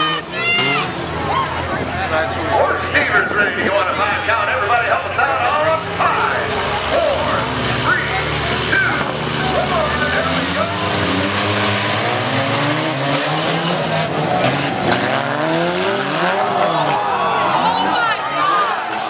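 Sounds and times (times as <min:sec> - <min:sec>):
car engines revving hard: 0:00.0 - 0:19.0
cars hitting each other: 0:05.4 - 0:19.0.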